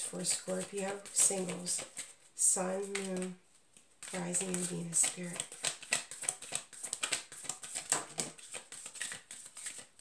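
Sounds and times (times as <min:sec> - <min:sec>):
cards being shuffled: 0:00.2 - 0:10.0.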